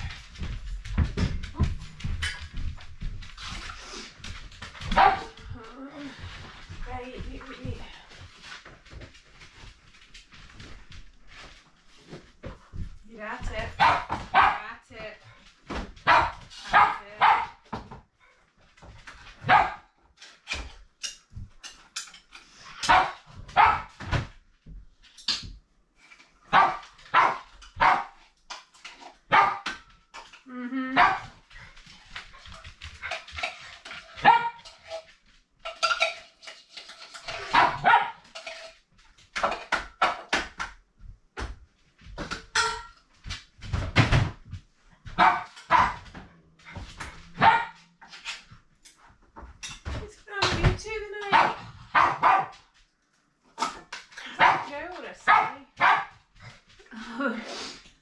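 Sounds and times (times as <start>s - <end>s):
dogs barking: 37.5s - 38.2s, 47.4s - 47.8s, 51.3s - 52.5s, 55.3s - 56.1s.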